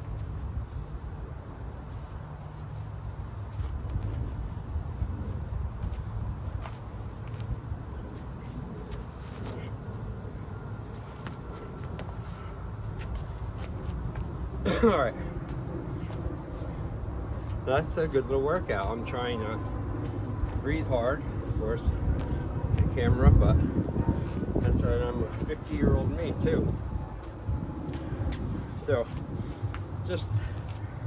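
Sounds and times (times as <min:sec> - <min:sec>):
low outdoor rumble: 0:00.0 - 0:31.0.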